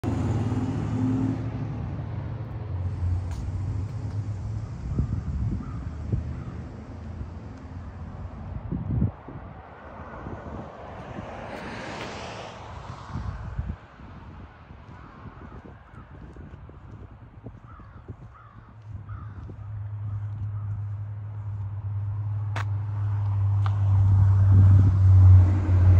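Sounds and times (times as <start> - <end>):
crow cawing: 5.6 - 6.6, 14.9 - 16.1, 17.7 - 20.8.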